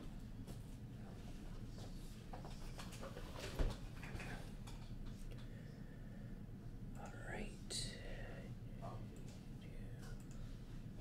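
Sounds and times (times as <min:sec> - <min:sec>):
low room hum: 0:00.0 - 0:11.0
person whispering softly: 0:07.0 - 0:10.7.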